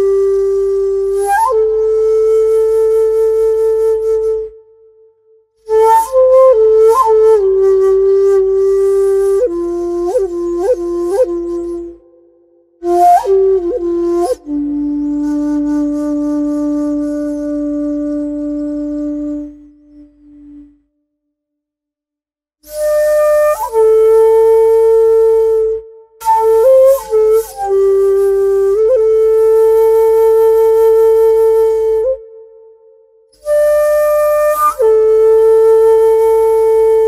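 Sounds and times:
bamboo flute long low note: 0.0s - 20.9s, 22.6s - 37.0s.

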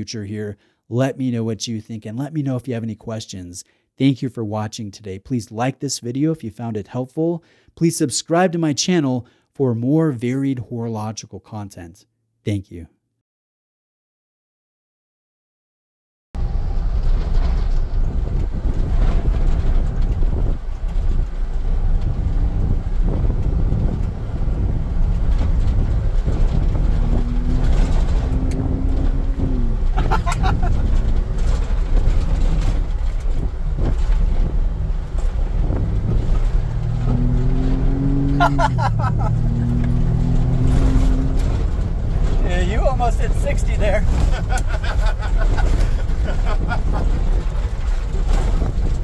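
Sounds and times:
engine accelerating: 16.4s - 48.7s
wind: 16.4s - 49.0s
tyres rumbling on gravel: 16.9s - 49.0s.

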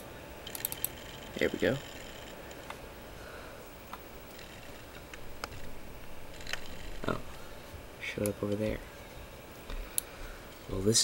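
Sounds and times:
faint steady hiss: 0.0s - 11.0s
computer mouse clicks: 0.5s - 1.0s.

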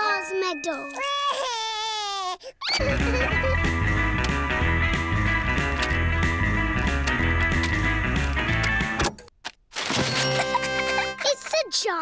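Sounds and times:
cartoon toddler crying: 1.0s - 3.6s.

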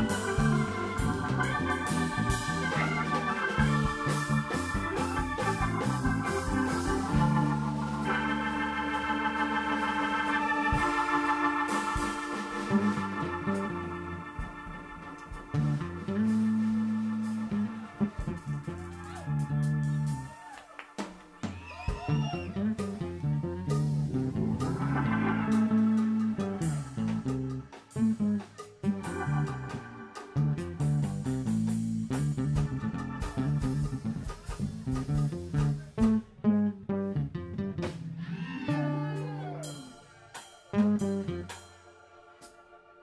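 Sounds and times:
instrumental jazz-funk music: 0.0s - 42.6s.

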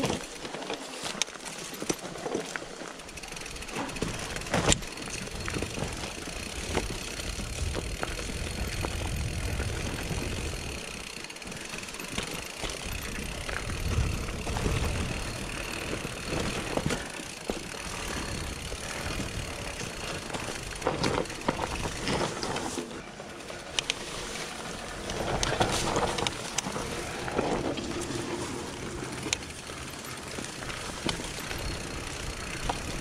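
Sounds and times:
bike rattling over bumps: 0.0s - 33.0s
bike tyres rolling over dirt: 0.0s - 33.0s.

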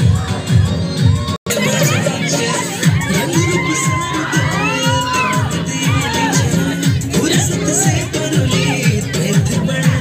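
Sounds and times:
girls shouting and cheering: 0.0s - 10.0s
song with thumping beat: 0.0s - 10.0s.

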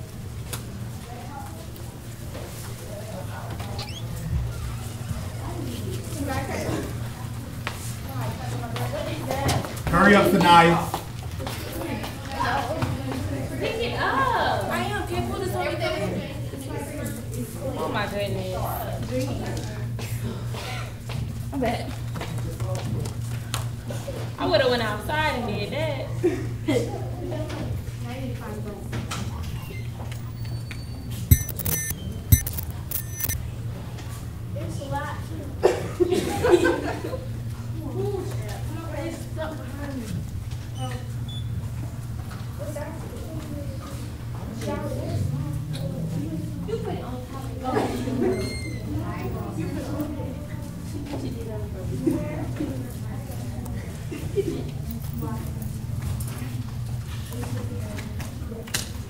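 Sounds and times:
indistinct chatter of voices: 34.7s - 59.0s.

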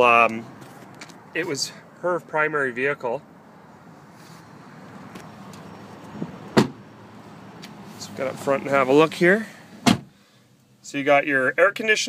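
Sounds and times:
car door shutting: 6.2s - 6.8s, 9.8s - 10.1s.

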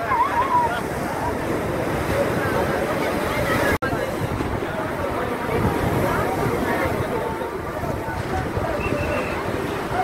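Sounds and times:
faint voices: 0.0s - 10.0s
sea surf breaking on a wall: 0.0s - 10.0s.

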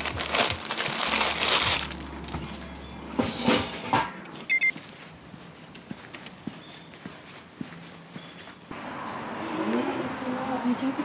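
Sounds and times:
plastic bag crinkling: 0.0s - 2.3s
short high beep: 4.5s - 4.7s.

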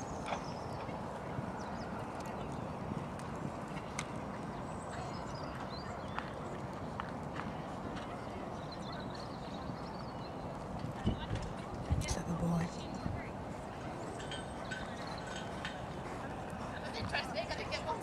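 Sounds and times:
hoofbeats cantering on sand: 0.0s - 12.1s, 12.7s - 18.0s.

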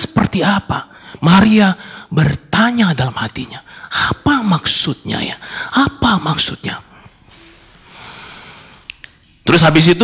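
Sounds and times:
man breathing in: 7.7s - 8.9s
mouth click: 8.8s - 9.2s.

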